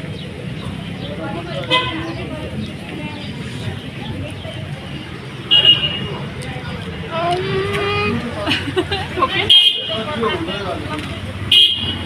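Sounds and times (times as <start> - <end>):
street traffic noise: 0.0 - 12.0
voices: 0.0 - 12.0
high-pitched vehicle horn toot: 11.5 - 12.0.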